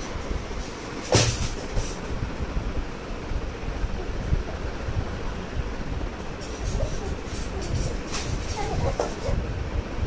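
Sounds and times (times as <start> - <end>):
baby walker wheels rumbling on tiles: 6.2 - 9.5.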